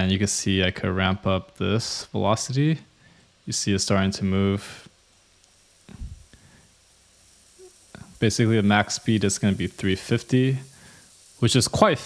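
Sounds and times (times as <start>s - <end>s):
faint ticks: 4.8s - 11.5s
servo motor buzzing: 5.4s - 11.8s
soft low thump: 5.9s - 6.3s.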